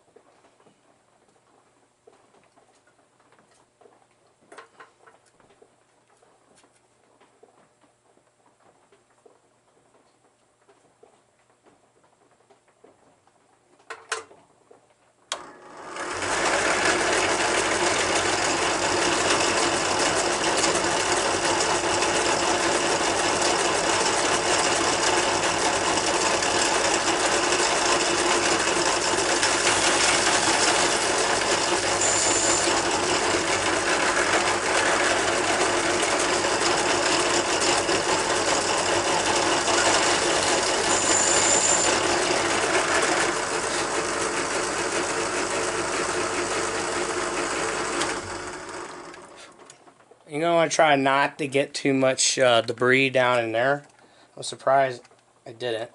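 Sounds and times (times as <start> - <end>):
drill press motor drilling plastic: 15.3 - 50.0
high-pitched squeals: 32.0 - 32.8.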